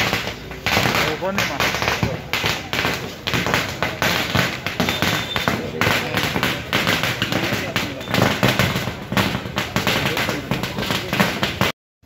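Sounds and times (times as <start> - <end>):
crowd voices: 0.0 - 11.7
firecrackers cracking: 0.0 - 11.7.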